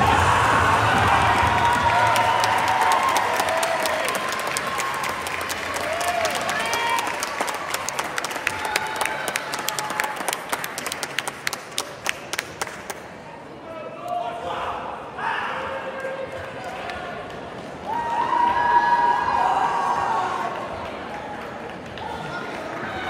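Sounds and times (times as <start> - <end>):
audience applause: 0.0 - 13.0.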